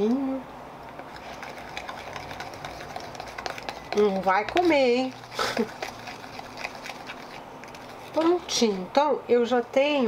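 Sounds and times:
spoon stirring paste in cup: 0.8 - 8.8.

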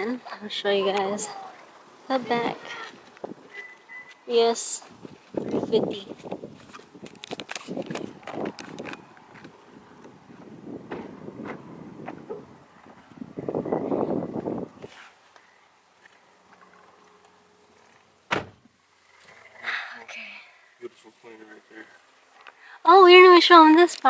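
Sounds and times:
car door shutting thud: 10.9 - 12.5, 18.3 - 18.6.

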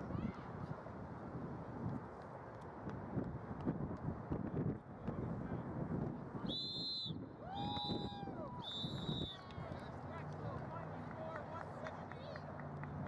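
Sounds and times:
wind noise on microphone: 0.0 - 9.7
referee's whistle blasts: 6.5 - 7.2.

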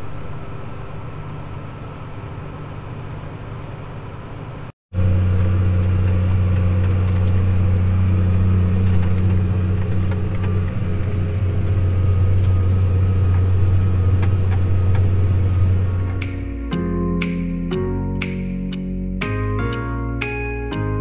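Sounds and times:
tractor engine running: 5.0 - 19.6.

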